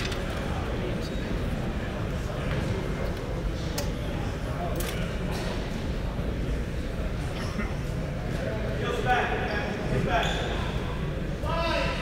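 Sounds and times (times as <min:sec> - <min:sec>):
players talking: 0:00.0 - 0:12.0.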